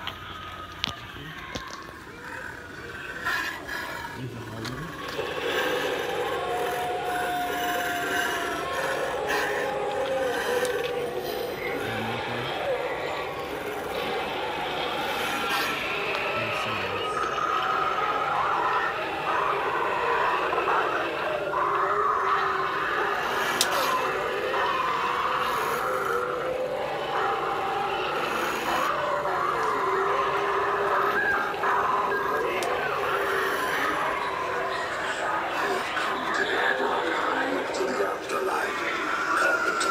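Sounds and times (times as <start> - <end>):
indistinct voices: 0.0 - 39.9.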